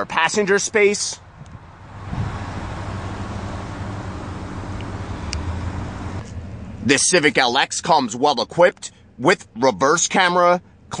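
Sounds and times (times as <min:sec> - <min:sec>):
traffic rumble: 0:00.0 - 0:11.0.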